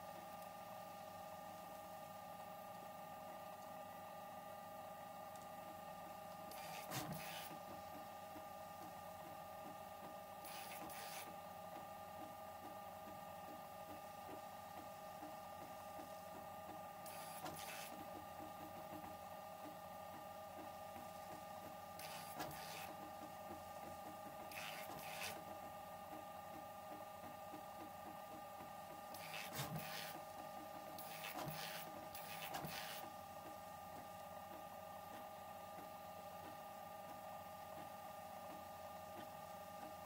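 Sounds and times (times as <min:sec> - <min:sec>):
printer head rasps: 0:31.0 - 0:33.1.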